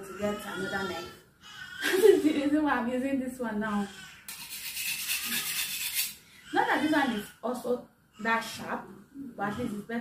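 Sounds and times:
woman's voice: 0.0 - 1.2, 1.8 - 4.0, 6.5 - 10.0
knife blade scraping metal: 4.3 - 6.2.

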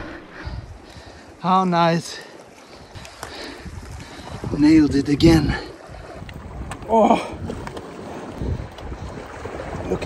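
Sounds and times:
wind rumbling on microphone: 0.0 - 1.4, 2.7 - 10.0
sea waves washing: 0.0 - 10.0.

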